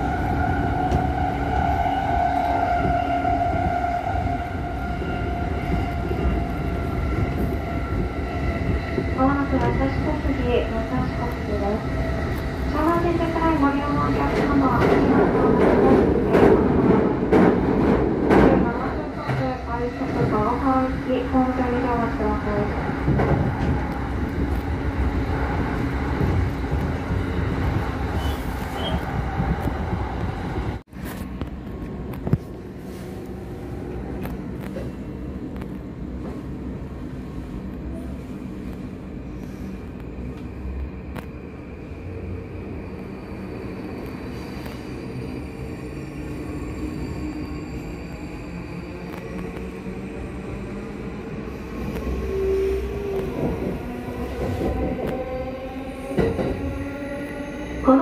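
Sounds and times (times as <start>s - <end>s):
train wheels rumbling on rails: 0.0s - 58.0s.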